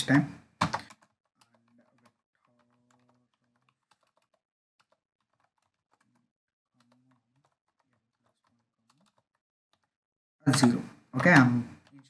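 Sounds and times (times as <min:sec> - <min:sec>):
keyboard typing: 0:00.6 - 0:12.0.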